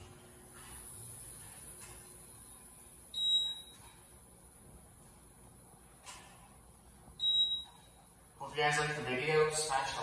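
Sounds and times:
elevator beep: 0:03.1 - 0:04.0, 0:07.2 - 0:08.0.

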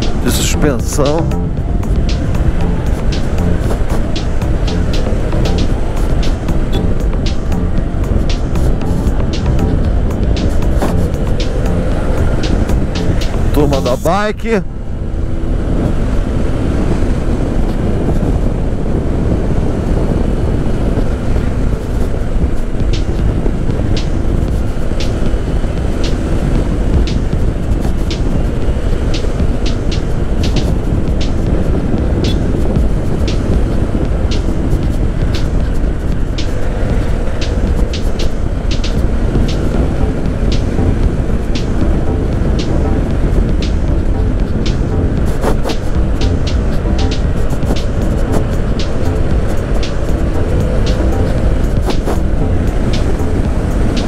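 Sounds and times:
wind rushing over microphone: 0:00.0 - 0:54.0
short sharp ticks: 0:32.2 - 0:32.6.

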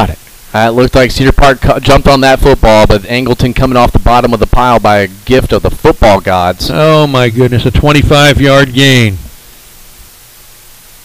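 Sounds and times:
commentator speaking: 0:00.0 - 0:09.3
steady low hiss: 0:00.0 - 0:11.0.

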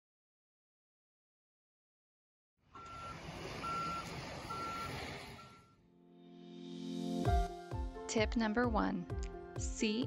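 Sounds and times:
vehicle backup alarm beeping: 0:02.8 - 0:05.9.

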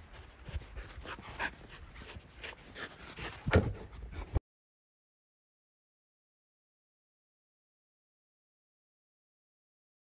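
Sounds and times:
dog panting: 0:00.0 - 0:04.4.

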